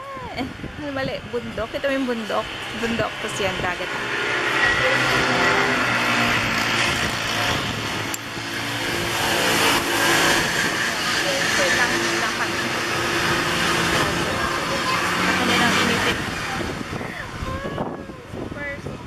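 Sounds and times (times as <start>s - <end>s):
people talking: 0.0s - 4.0s, 4.6s - 5.8s, 10.6s - 18.9s
vehicle engine humming: 0.0s - 19.0s.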